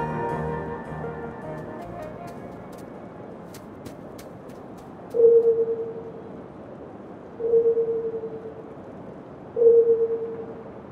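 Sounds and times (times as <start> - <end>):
mid-pitched tone: 0.0 - 3.2.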